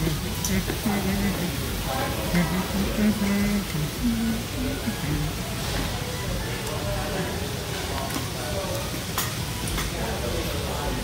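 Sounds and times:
background chatter: 0.0s - 11.0s.

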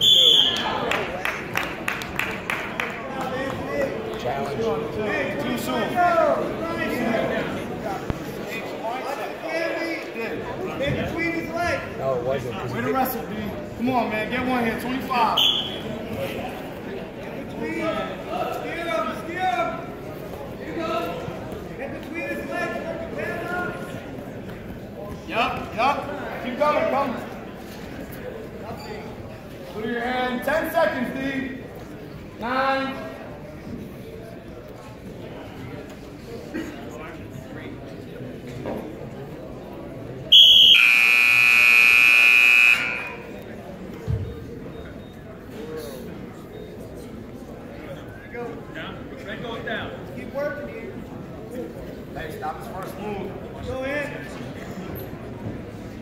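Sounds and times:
crowd murmur: 0.0s - 56.0s
scoreboard buzzer: 40.4s - 43.3s.

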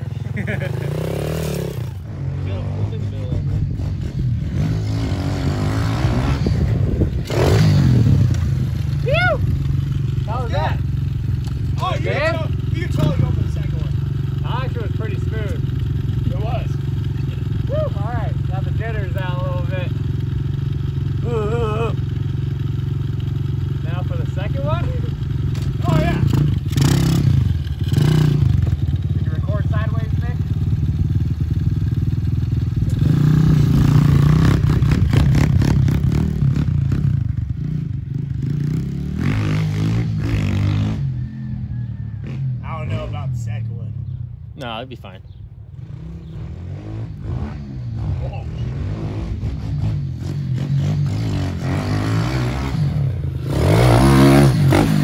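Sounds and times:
pit bike engine revving: 0.0s - 44.8s, 45.6s - 55.0s.

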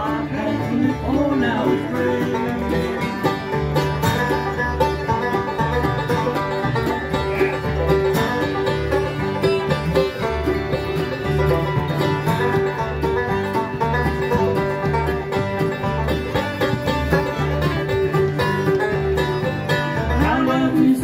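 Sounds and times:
acoustic guitar: 0.0s - 21.0s
banjo: 0.0s - 21.0s
mandolin: 0.0s - 21.0s
upright bass notes: 0.0s - 21.0s.

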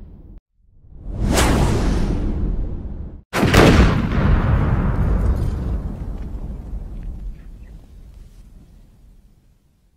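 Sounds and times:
whooshing booming sound effects: 0.9s - 6.0s.

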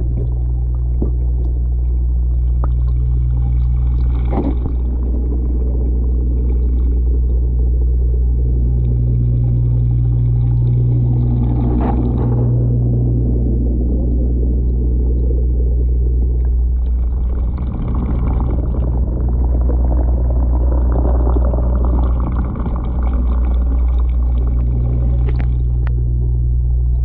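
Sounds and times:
aquarium pump hum: 0.0s - 27.0s.

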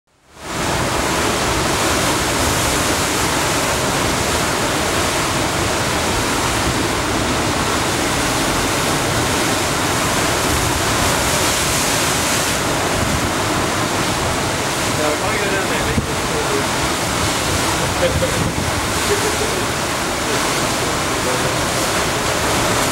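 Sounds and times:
surf breaking over rocks: 0.3s - 22.9s.

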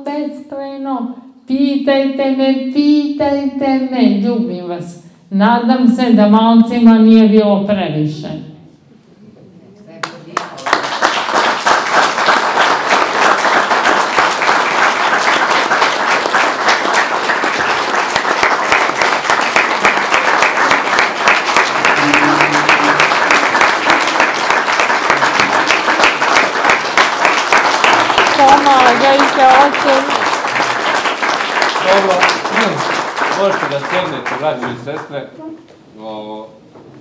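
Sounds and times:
audience applauding: 10.0s - 35.2s.

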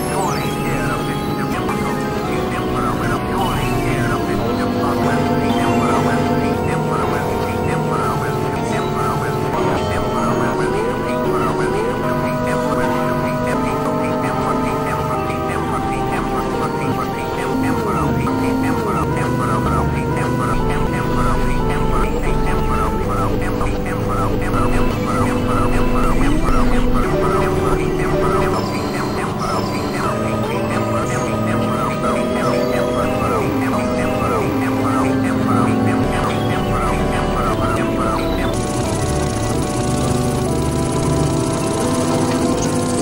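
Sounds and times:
pulsing synth tone: 0.0s - 43.0s
synthesizer drone: 0.0s - 43.0s.

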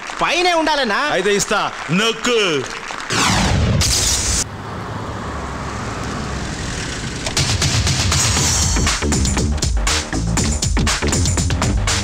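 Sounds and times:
low rumble of traffic: 4.4s - 8.0s.

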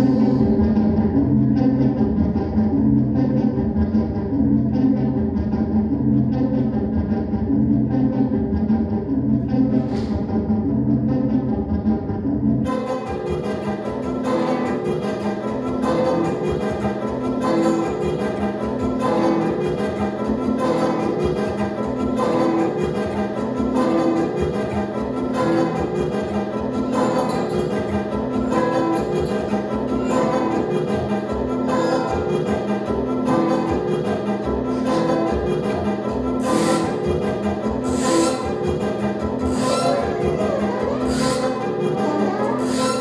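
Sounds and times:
experimental band music: 0.0s - 43.0s.

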